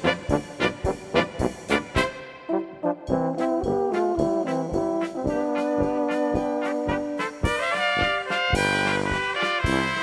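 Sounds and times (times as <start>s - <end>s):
brass band playing a polka: 0.0s - 10.0s.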